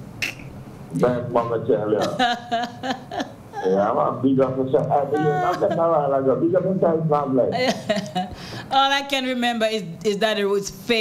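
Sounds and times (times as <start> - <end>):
person speaking: 0.9 - 2.8, 3.6 - 8.3.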